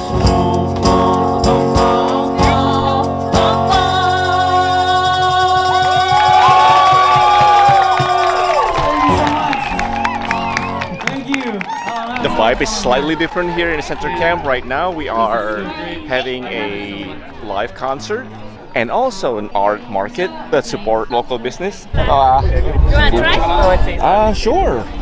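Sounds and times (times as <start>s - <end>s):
man and woman singing together: 0.0s - 7.4s, 11.8s - 17.8s
tambourine: 0.0s - 9.5s
acoustic guitar: 0.0s - 25.0s
hand shaker: 0.5s - 9.6s.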